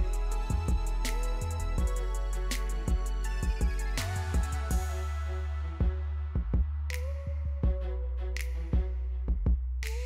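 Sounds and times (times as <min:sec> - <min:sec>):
deep bass line: 0:00.0 - 0:10.0.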